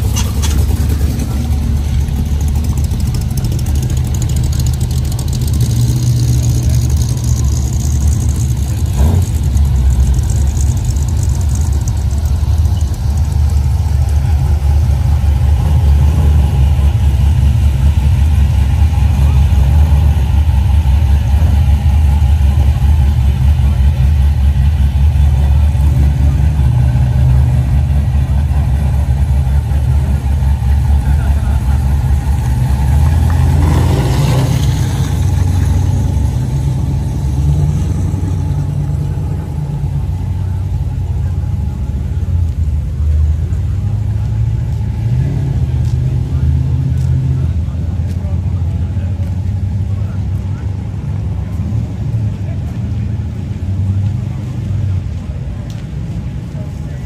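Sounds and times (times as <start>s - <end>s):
muscle car engines idling: 0.0s - 57.0s.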